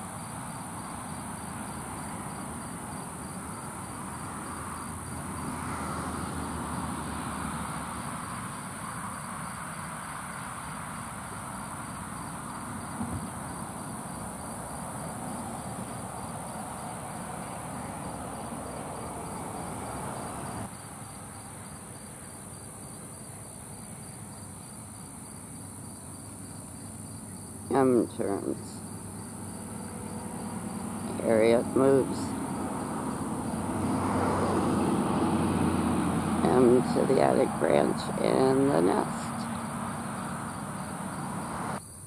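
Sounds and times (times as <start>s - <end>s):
night insects chirping: 0.0s - 42.0s.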